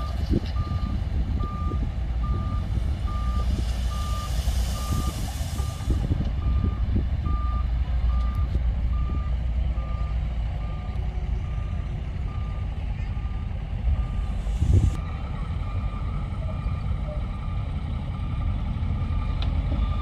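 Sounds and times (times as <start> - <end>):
reversing alarm beeping: 0.0 - 15.0
diesel machinery rumbling: 0.0 - 20.0
hiss: 3.4 - 6.0.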